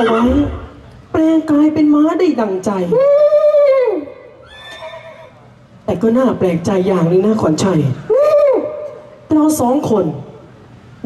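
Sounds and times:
horse whinny: 0.0s - 0.7s, 4.4s - 5.4s.

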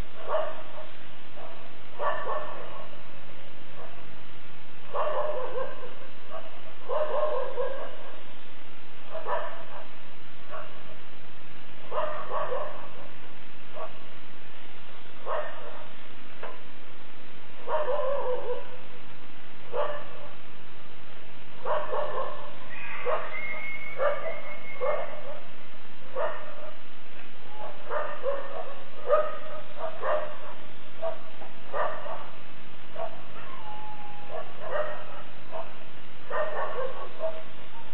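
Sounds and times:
dog barking and yipping: 0.2s - 3.0s, 4.9s - 8.2s, 9.1s - 10.9s, 11.9s - 13.1s, 13.8s - 14.0s, 15.2s - 15.9s, 17.6s - 18.8s, 19.7s - 20.4s, 21.6s - 25.5s, 26.1s - 26.8s, 27.5s - 37.9s.

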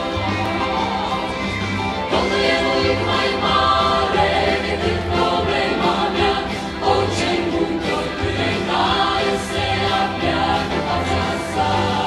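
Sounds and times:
large choir singing: 0.0s - 12.0s.

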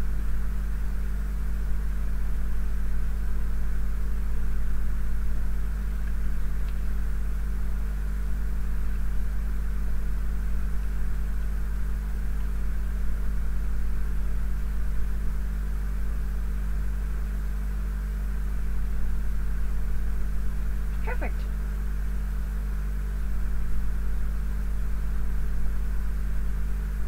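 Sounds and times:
electrical hum: 0.0s - 27.0s.

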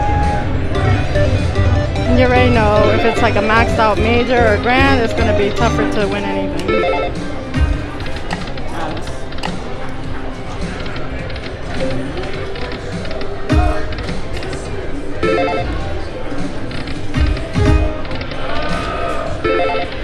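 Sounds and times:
casino background noise: 0.0s - 20.0s
slot machine chimes and jingles: 1.0s - 7.2s, 15.2s - 15.7s.

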